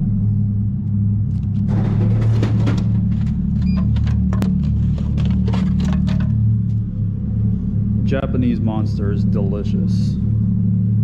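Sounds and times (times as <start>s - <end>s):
loud low drone: 0.0s - 11.0s.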